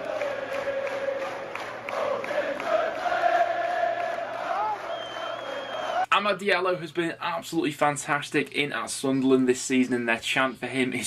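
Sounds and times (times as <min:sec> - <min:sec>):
football supporters singing a chant: 0:00.0 - 0:06.0.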